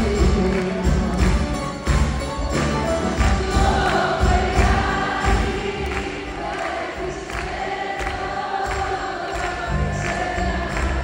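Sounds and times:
woman singing: 0:03.1 - 0:11.0.

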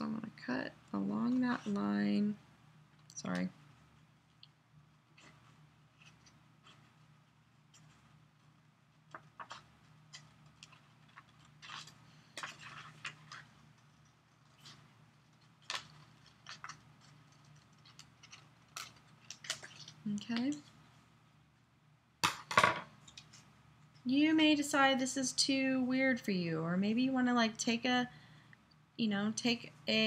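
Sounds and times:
paper being handled: 0:05.0 - 0:20.0.

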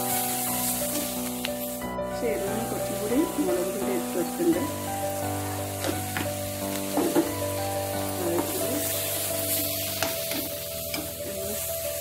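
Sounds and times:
background music: 0:00.0 - 0:12.0
vegetables sizzling in a wok: 0:00.0 - 0:12.0.

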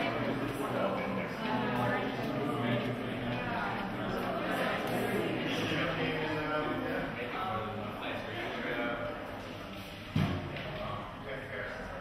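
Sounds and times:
people conversing: 0:00.0 - 0:12.0.

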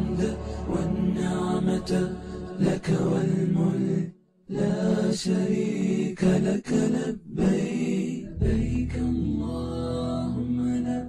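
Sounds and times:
voices chanting together: 0:00.0 - 0:11.0
low drone: 0:08.4 - 0:11.0.

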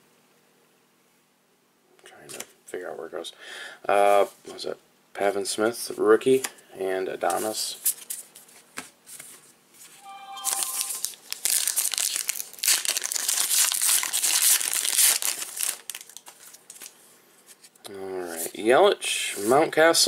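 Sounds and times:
wrapper tearing and crinkling: 0:10.5 - 0:17.0.

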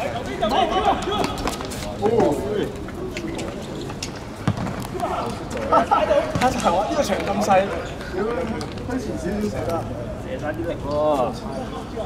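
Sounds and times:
men shouting and calling: 0:00.0 - 0:02.7.

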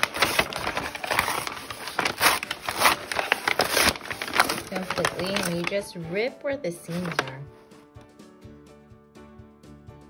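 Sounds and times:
paper bag crinkling: 0:00.0 - 0:06.1, 0:06.7 - 0:07.5.

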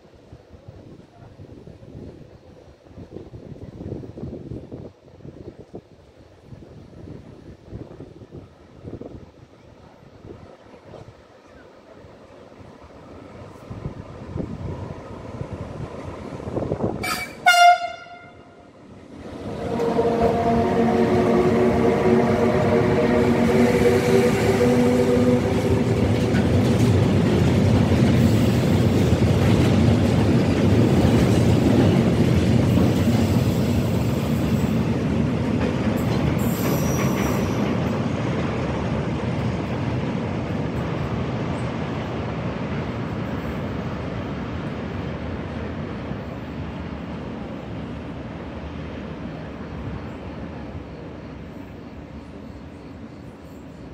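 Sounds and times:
train wheels rumbling over rails: 0:01.7 - 0:53.9
locomotive horn blast: 0:17.0 - 0:18.7, 0:19.5 - 0:26.9
high-pitched squeal: 0:19.4 - 0:27.0.

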